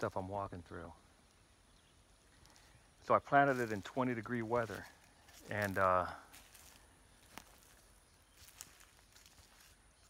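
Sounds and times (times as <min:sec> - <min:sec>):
footsteps in dry leaves: 0:02.2 - 0:10.0.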